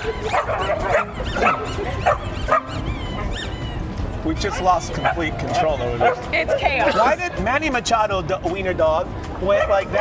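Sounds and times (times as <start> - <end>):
dogs barking: 0.0 - 7.1, 9.4 - 10.0.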